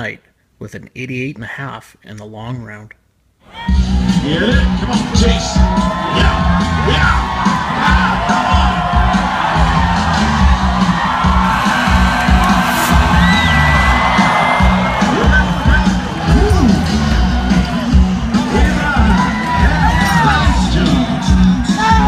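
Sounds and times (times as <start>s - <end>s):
crowd cheering and whooping: 3.5s - 22.0s
music with heavy beat: 3.7s - 22.0s.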